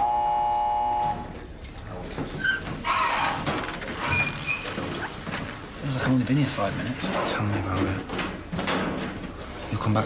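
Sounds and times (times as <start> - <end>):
electric buzzer tone: 0.0 - 1.2
crowd shuffle and murmur: 0.5 - 9.9.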